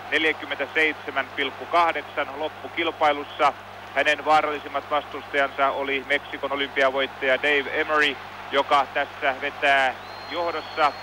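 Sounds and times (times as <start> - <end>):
man commentating: 0.0 - 11.0.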